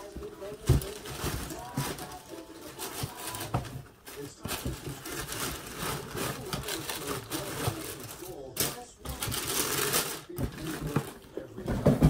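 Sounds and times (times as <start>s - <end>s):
paper rustling and crinkling: 0.0s - 12.0s.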